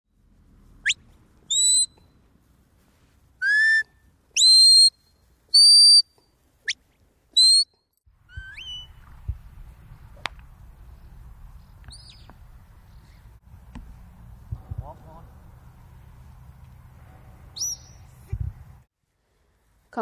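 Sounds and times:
faint outdoor noise: 0.1s - 20.0s
high whistles: 0.8s - 2.2s, 3.4s - 9.0s, 11.8s - 12.4s, 17.5s - 18.2s.

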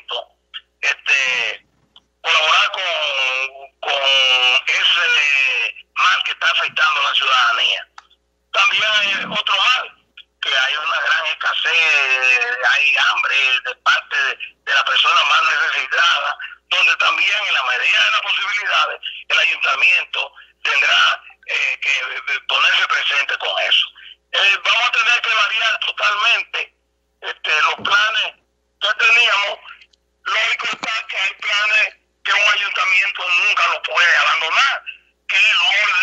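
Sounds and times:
man speaking over telephone: 0.0s - 1.6s, 2.2s - 36.0s.

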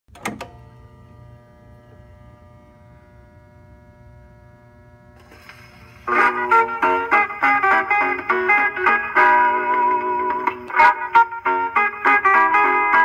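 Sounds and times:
gramophone needle clicks: 0.1s - 0.6s
low record rumble: 0.5s - 8.6s.

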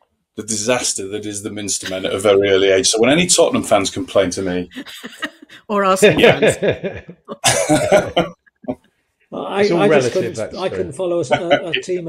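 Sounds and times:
person laughing: 6.1s - 8.7s.

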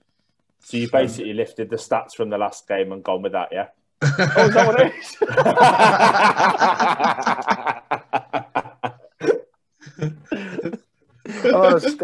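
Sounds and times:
men laughing: 4.0s - 12.0s.

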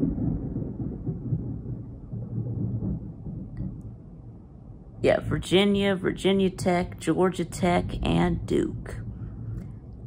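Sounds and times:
thunder rolling rumble: 0.0s - 10.0s.

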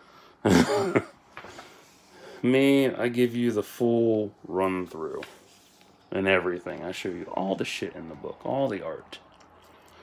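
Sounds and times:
man clearing his throat: 0.5s - 1.1s.

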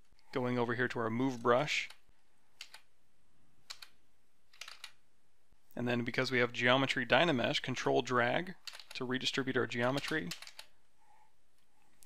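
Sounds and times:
computer keyboard keys tapping: 2.6s - 2.9s, 3.7s - 4.0s, 4.6s - 5.0s, 9.8s - 10.7s.

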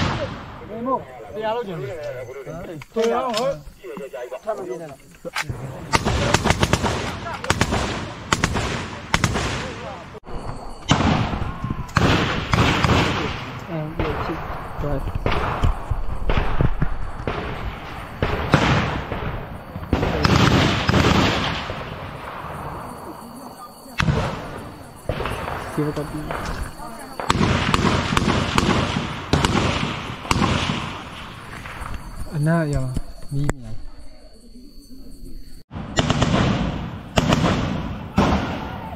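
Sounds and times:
gunshots with echo: 0.0s - 0.9s, 5.7s - 10.2s, 10.9s - 22.9s, 27.2s - 31.7s, 35.7s - 38.9s
voices calling out: 0.0s - 16.4s, 17.2s - 35.7s, 36.9s - 38.9s.

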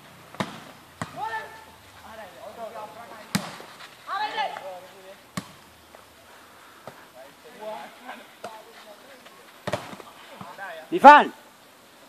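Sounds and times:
players calling and shouting: 0.0s - 11.8s.

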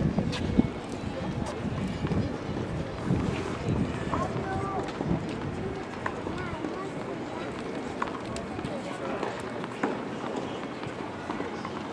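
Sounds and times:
murmur of people talking: 0.0s - 11.9s.

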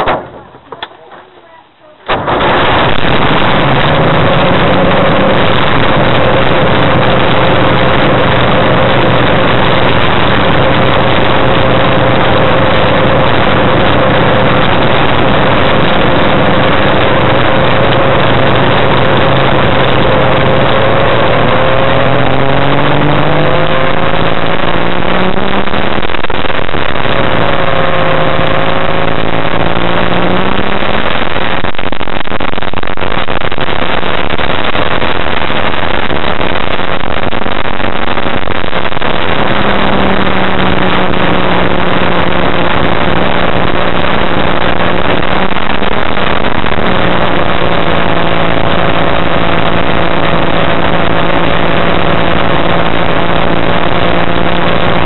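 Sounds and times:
ultralight aircraft engine running: 2.0s - 55.0s.

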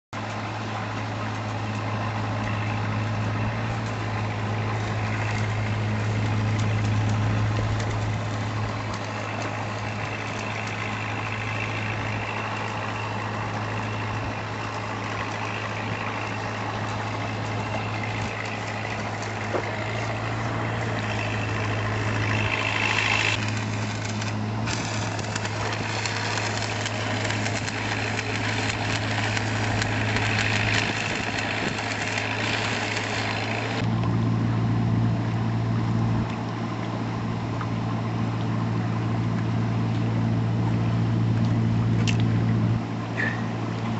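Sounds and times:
engine idling: 0.2s - 43.9s.

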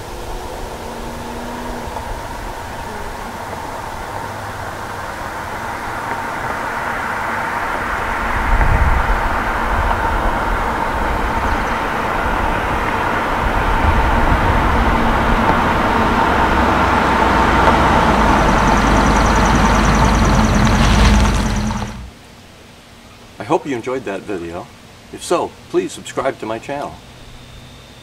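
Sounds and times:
car engine approaching: 0.0s - 22.1s.

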